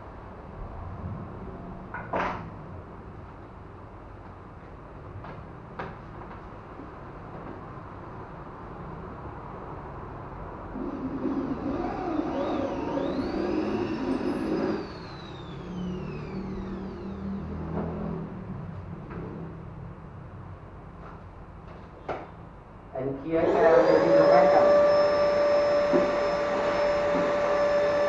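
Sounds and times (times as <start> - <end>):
electric drill boring into wood: 10.8 - 18.2, 23.4 - 28.0.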